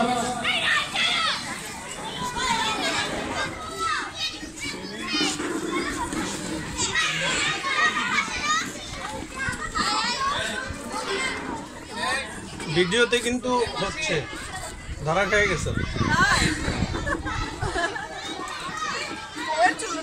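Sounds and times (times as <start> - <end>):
adults talking: 0.0 - 20.0
children chattering and calling out: 0.0 - 20.0.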